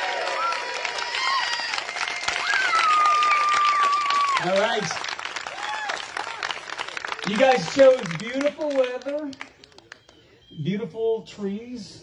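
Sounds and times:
long high held cheer: 0.0 - 7.9
cheering voices: 0.0 - 8.0
crowd clapping: 0.0 - 10.2.

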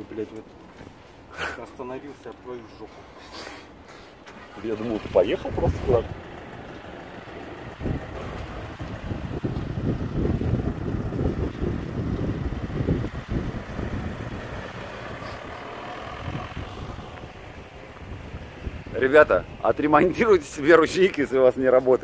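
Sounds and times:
tyres on road: 0.0 - 22.0
van engine driving off: 4.2 - 22.0
wind buffeting microphone: 4.9 - 21.2.

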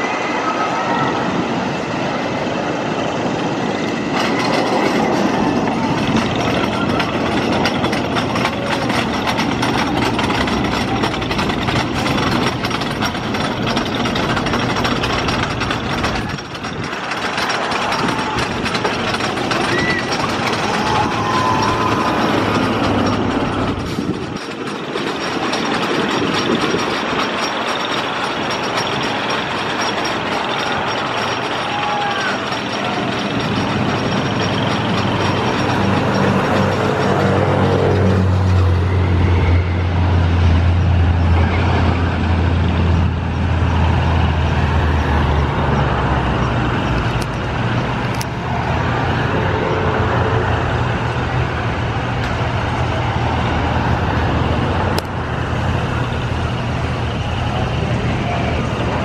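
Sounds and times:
passing road traffic: 0.0 - 59.0
roller coaster rumbling on track: 0.0 - 59.0.

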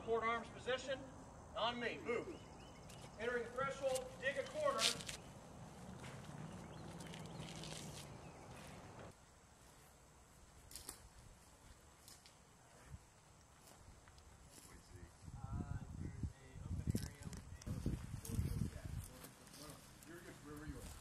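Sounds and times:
man calling out: 0.0 - 2.5, 3.2 - 5.1.

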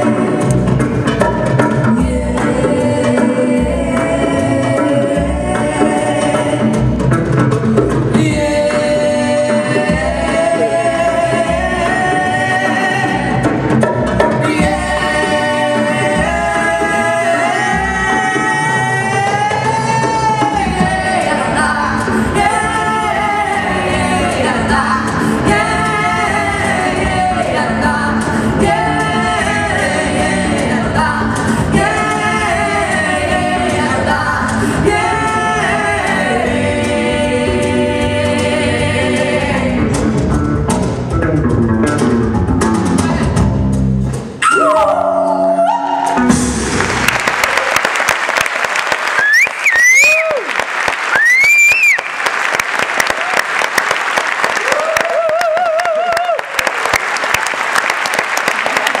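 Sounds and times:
electric bass and band: 0.0 - 47.7
women singing a duet: 1.7 - 6.9, 8.1 - 13.6, 14.3 - 40.0, 44.4 - 46.3
audience cheering: 46.0 - 59.0
audience applause: 46.5 - 59.0.

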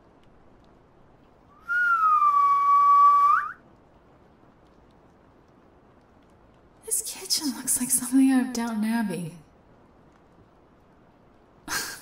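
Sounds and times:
whistled note: 1.6 - 3.6.

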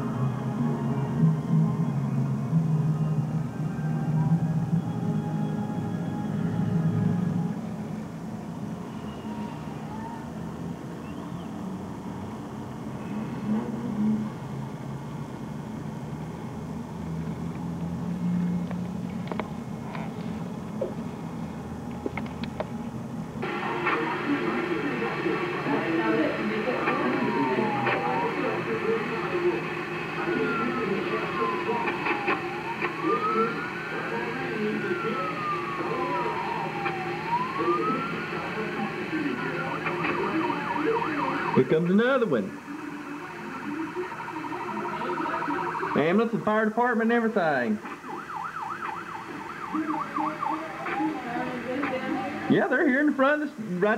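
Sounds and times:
emergency vehicle siren wailing: 0.0 - 14.2, 23.4 - 46.7, 47.7 - 52.6
low city hum: 0.0 - 53.8
traffic: 0.0 - 53.9
din of voices: 23.4 - 48.0, 49.2 - 53.9.

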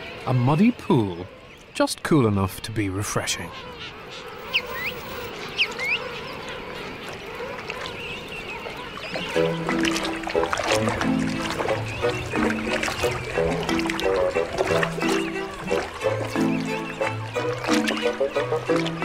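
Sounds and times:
penguin chicks whistling: 4.3 - 6.4, 10.9 - 19.0
water washing: 8.7 - 19.0
light plucked music: 9.3 - 19.0.

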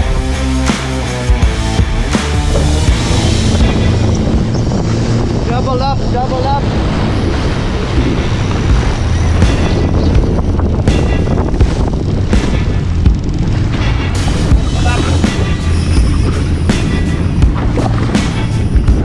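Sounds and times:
background music: 0.0 - 19.0
boat engine running: 0.0 - 19.0
rushing water: 0.0 - 19.0
wind buffeting microphone: 1.8 - 19.0.

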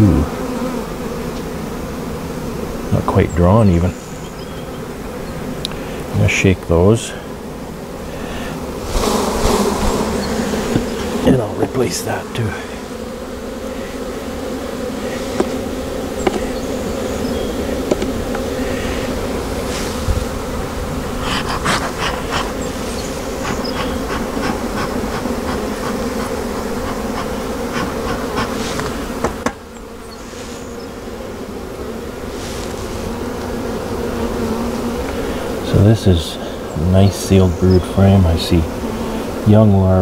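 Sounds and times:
bees buzzing: 0.0 - 40.0
light knocks: 16.2 - 16.6, 17.8 - 18.4.

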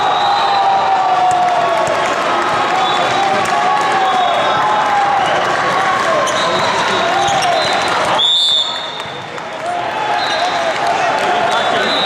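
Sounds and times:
referee's whistle: 0.0 - 0.7, 4.0 - 4.6, 6.2 - 9.2, 10.1 - 10.7, 11.5 - 12.0
many voices and shouted calls: 0.0 - 12.0
sneakers squeaking: 6.2 - 9.3.

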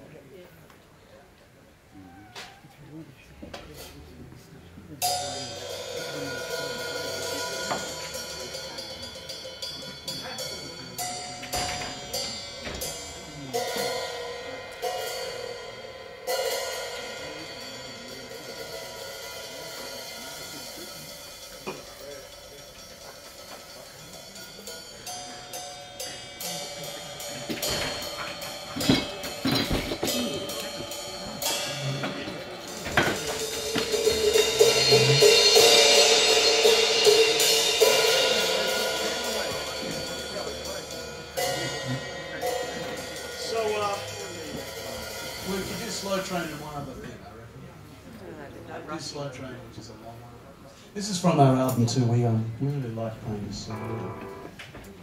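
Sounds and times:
drums and cymbals: 4.8 - 47.4, 50.8 - 52.9, 53.6 - 55.0
blues electric guitar: 53.7 - 54.7.

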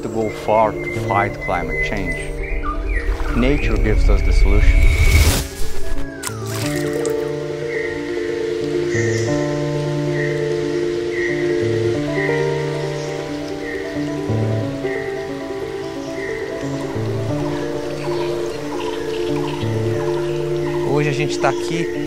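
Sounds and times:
soft sustained chords: 0.0 - 22.0.

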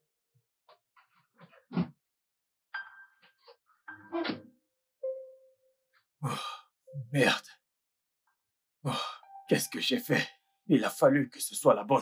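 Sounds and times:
soft tone: 3.9 - 5.8
man sighing oh: 6.2 - 6.6.

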